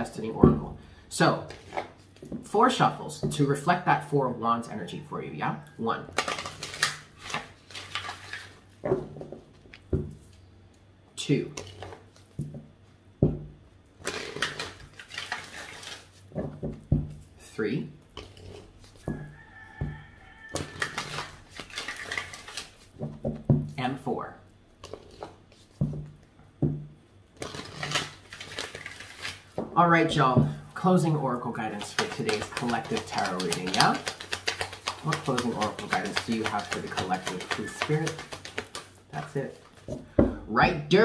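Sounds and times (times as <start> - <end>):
cards being shuffled: 6.1 - 8.6, 14.0 - 16.5, 20.6 - 23.1, 24.8 - 26.0, 27.4 - 29.6, 31.0 - 40.1.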